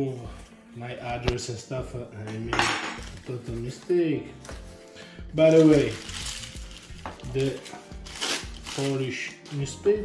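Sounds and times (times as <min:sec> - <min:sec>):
newspaper crinkling and rustling: 0:05.4 - 0:10.0.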